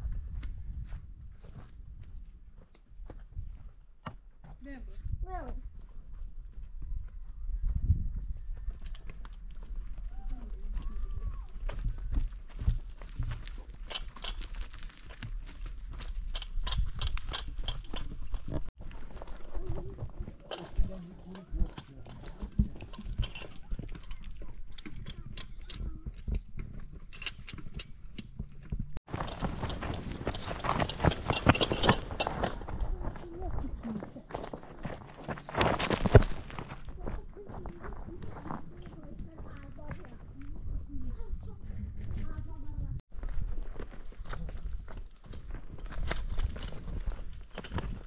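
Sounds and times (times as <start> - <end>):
footsteps on stones and leaves: 8.6 - 41.3, 43.1 - 48.0
voices: 36.9 - 43.0.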